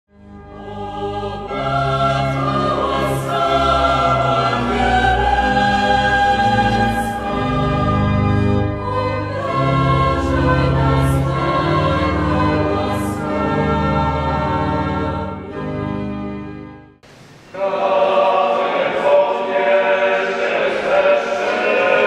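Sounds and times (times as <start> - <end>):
choir singing sustained chords: 0.2 - 22.0.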